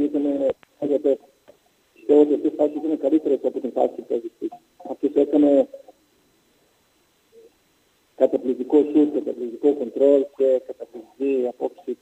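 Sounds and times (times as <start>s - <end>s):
person speaking over phone line: 0.0s - 1.3s, 2.0s - 6.0s, 8.2s - 12.0s.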